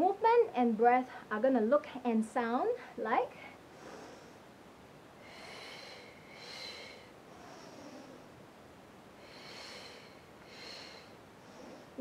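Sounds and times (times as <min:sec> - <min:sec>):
faint inhale: 0:02.8 - 0:04.5, 0:05.2 - 0:08.4, 0:09.2 - 0:12.0.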